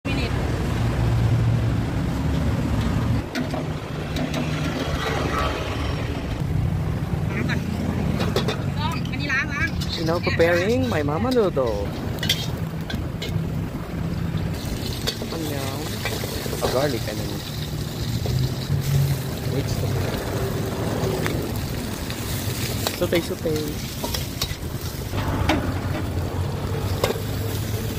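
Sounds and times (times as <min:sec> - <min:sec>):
gas burner rumbling: 0:01.2 - 0:27.9
voices talking: 0:07.1 - 0:13.1
metal spatula clinking on wok: 0:09.6 - 0:13.4
vegetables frying: 0:09.6 - 0:27.9
low motor rumble: 0:23.8 - 0:27.9.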